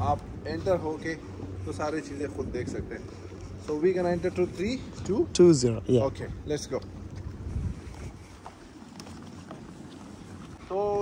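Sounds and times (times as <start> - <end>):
wind buffeting microphone: 0.0 - 11.0
footsteps on wooden boardwalk: 1.0 - 5.2, 6.7 - 10.8.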